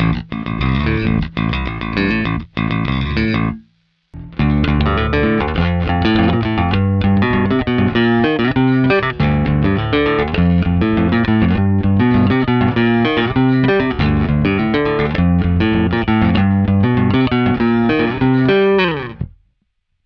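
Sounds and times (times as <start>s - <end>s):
bass guitar plucked fingerstyle: 0.0s - 19.5s.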